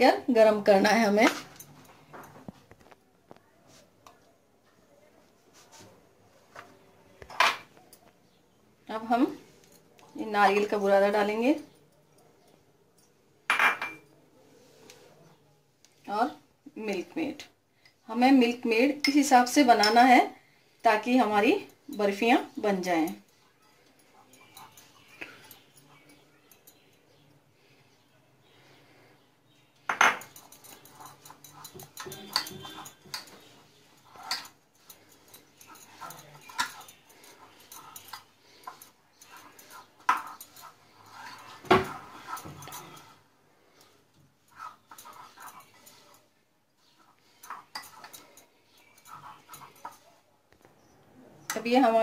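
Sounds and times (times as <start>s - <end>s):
faint background voices: 11.8s - 16.1s
mixture rustling: 30.2s - 50.8s.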